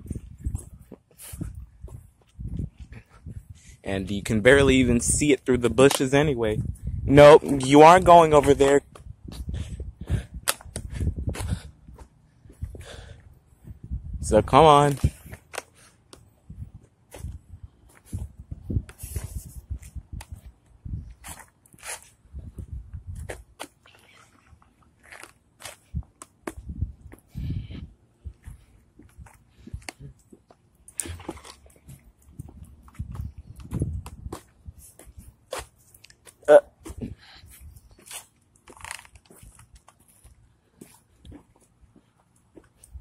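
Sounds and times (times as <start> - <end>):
footsteps on pavement: 0.0 - 3.4, 10.8 - 13.8, 14.8 - 22.2, 24.9 - 43.0.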